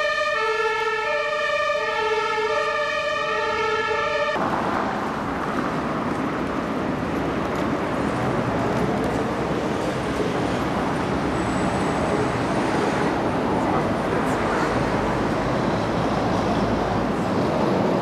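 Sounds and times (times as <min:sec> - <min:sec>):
siren steady tone: 0:00.0 - 0:04.4
city street traffic: 0:00.0 - 0:18.0.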